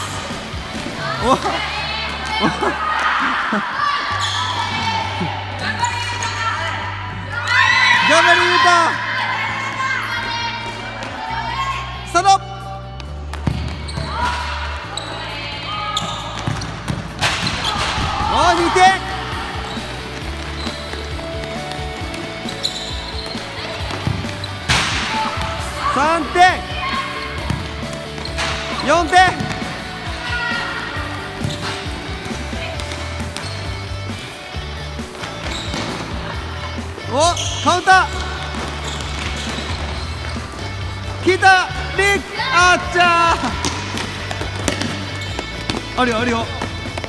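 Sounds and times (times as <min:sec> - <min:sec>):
background music: 0:00.0 - 0:47.0
ball bouncing on hard floor: 0:13.0 - 0:14.2, 0:16.0 - 0:18.0, 0:29.3 - 0:29.7, 0:43.6 - 0:47.0
sharp ball impact: 0:23.9 - 0:25.5, 0:43.6 - 0:45.9.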